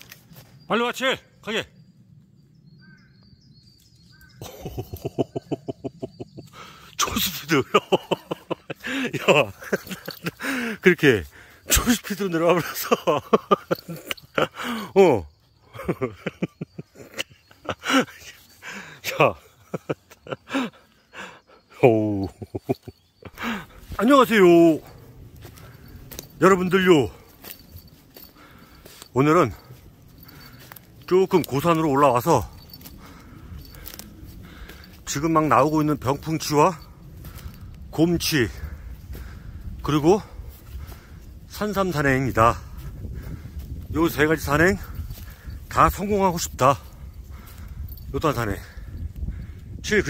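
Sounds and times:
faint bird chirps: 0.0 - 43.3
footsteps on fallen leaves: 23.4 - 35.9.

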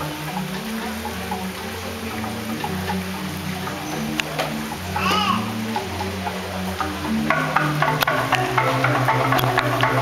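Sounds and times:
metallophones ringing notes: 0.0 - 10.0.

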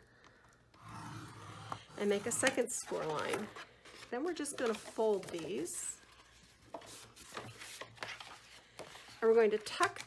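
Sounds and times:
stylus scraping on cardstock: 0.8 - 3.2.

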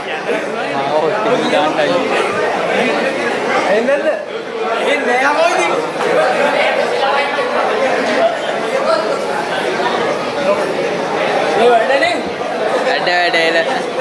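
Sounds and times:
chatter of voices in hall: 0.0 - 14.0.

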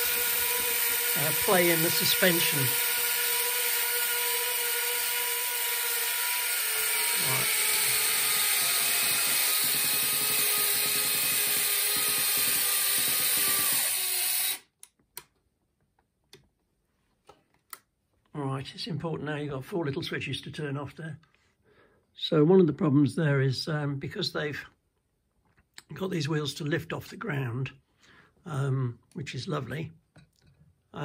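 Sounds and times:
electric actuators whining: 0.0 - 14.6.

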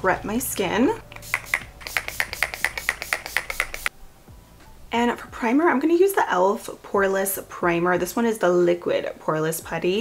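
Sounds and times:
mist spray spritzes: 1.1 - 3.9.

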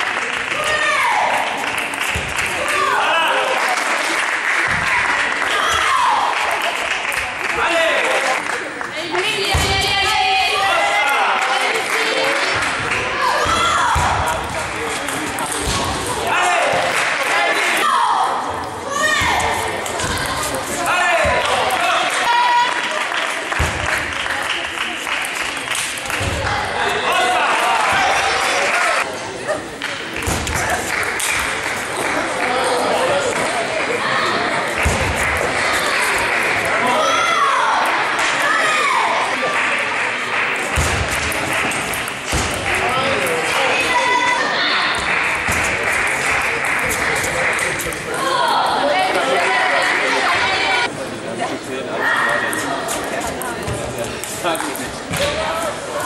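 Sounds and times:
steady background noise: 0.0 - 56.0.

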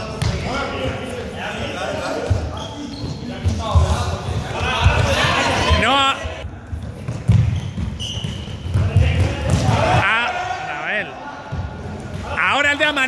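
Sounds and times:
running footsteps on court floor: 1.9 - 10.0
players shouting: 3.7 - 6.4, 8.9 - 13.0.

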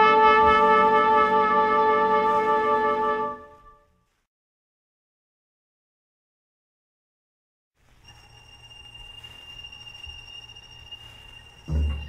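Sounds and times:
low hum: 7.8 - 12.0
thin high whine: 7.8 - 12.0.

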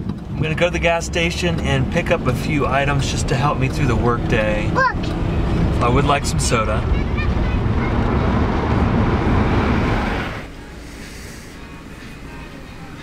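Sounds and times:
car cabin road and engine noise: 0.0 - 13.0.

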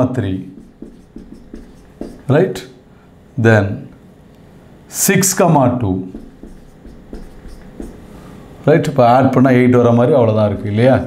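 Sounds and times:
marker writing on whiteboard: 0.5 - 2.6, 6.0 - 8.1.

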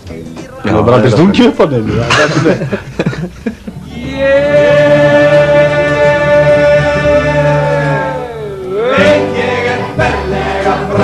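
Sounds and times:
acoustic guitars: 0.0 - 11.0
double bass: 1.9 - 11.0
men singing in harmony: 3.8 - 11.0.

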